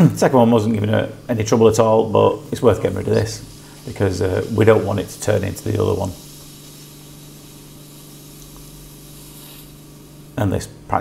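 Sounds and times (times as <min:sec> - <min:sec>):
suction machine hissing: 0:00.0 - 0:10.8.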